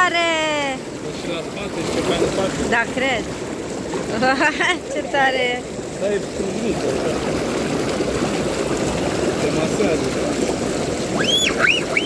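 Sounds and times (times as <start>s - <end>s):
hot tub jets bubbling: 0.0s - 12.0s.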